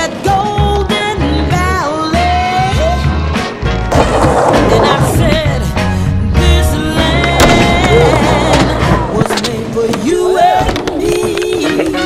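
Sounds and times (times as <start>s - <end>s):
folk-style music: 0.0s - 12.0s
skateboard wheels rolling: 3.9s - 5.8s, 6.6s - 12.0s
skateboard clacking on concrete: 7.1s - 12.0s.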